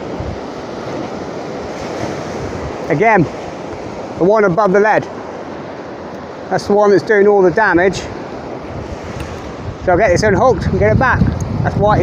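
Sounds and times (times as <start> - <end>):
wind on microphone: 0.0 - 4.2, 7.6 - 12.0
surf breaking on shore: 0.0 - 12.0.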